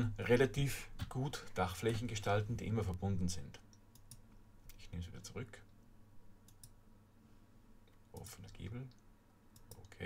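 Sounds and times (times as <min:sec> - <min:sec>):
low steady hum: 0:00.0 - 0:10.0
computer mouse clicks: 0:03.7 - 0:04.8, 0:06.5 - 0:06.8, 0:07.9 - 0:10.0.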